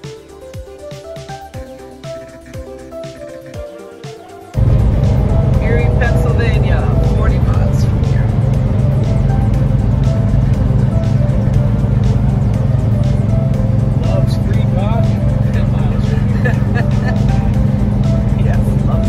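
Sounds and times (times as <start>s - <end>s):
faint music: 0.0s - 19.0s
indistinct voice: 3.8s - 9.1s
road noise: 4.6s - 19.0s
truck engine drone: 4.6s - 19.0s.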